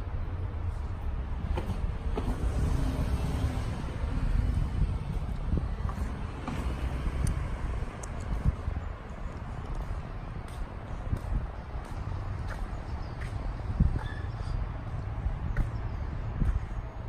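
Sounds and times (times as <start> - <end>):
distant traffic: 0.0 - 17.0
wind on microphone: 1.4 - 17.0.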